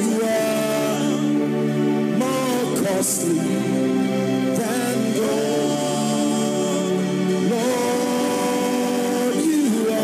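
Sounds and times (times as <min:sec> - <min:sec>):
gospel singing and keyboard chord: 0:00.0 - 0:10.0.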